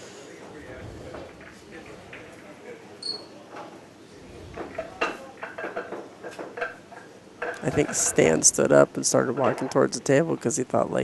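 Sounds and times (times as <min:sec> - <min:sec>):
pool balls clacking: 0:00.4 - 0:10.6.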